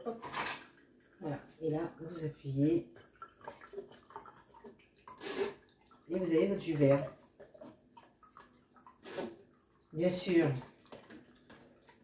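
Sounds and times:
juice trickling into bottle: 0:03.0 - 0:12.0
soft drip ticks: 0:07.2 - 0:10.0.

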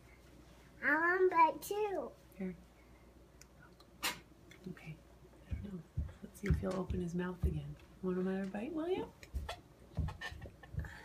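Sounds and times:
soft clicks and knocks: 0:05.4 - 0:11.0.

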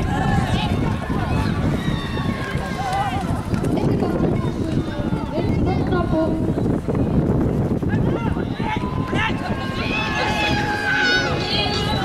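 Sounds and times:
hooves galloping on sand: 0:00.0 - 0:12.0
people shouting: 0:07.9 - 0:12.0.

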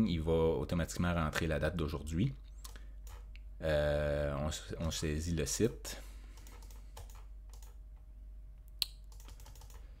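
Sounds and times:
keyboard and mouse clicks: 0:02.6 - 0:03.5, 0:06.4 - 0:07.8, 0:08.6 - 0:09.9.

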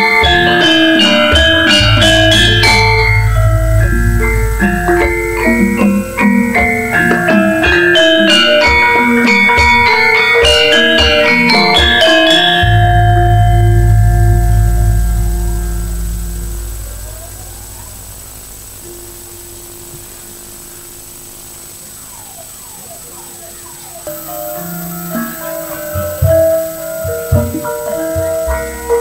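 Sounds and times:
deep gong stroke: 0:00.0 - 0:29.0
faint held sliding notes: 0:00.0 - 0:29.0
gamelan metallophone notes: 0:00.0 - 0:29.0
hand drum strokes: 0:00.0 - 0:29.0.

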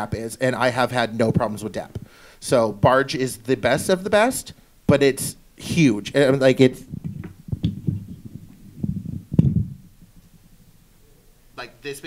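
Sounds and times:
microphone handling rumble: 0:01.2 - 0:02.1, 0:05.2 - 0:11.3
microphone knocking into stand: 0:06.6 - 0:10.8.

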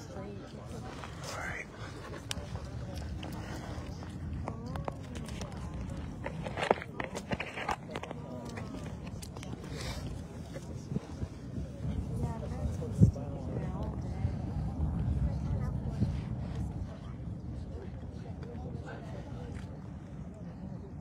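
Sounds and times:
indistinct background voices: 0:00.0 - 0:21.0
steady low rumble: 0:00.0 - 0:21.0.

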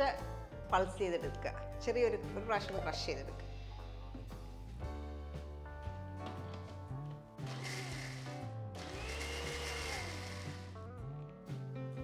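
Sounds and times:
background music: 0:00.0 - 0:12.0
mixer grinder running: 0:07.4 - 0:10.8.

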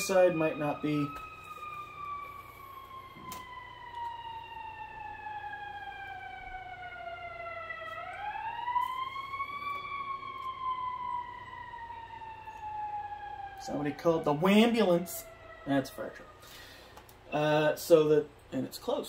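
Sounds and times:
fire truck siren wailing: 0:00.0 - 0:18.2.

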